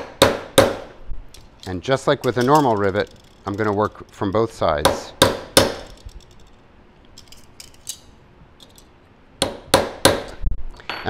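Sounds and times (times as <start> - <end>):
hammer striking metal punch: 0.0 - 0.9, 4.8 - 5.9, 9.4 - 11.0.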